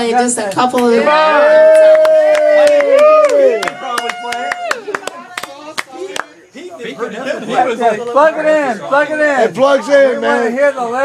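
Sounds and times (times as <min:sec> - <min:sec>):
people cheering: 0:01.0 - 0:06.4
audience clapping: 0:01.7 - 0:06.3.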